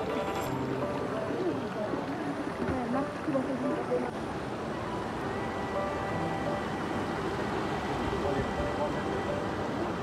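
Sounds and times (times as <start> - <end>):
soft background music: 4.8 - 10.0.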